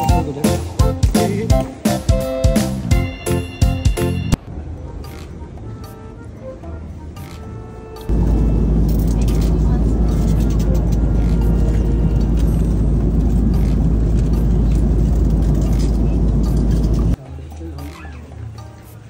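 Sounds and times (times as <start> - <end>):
quiet indoor murmur: 8.1 - 13.8
airliner cabin roar: 8.1 - 17.2.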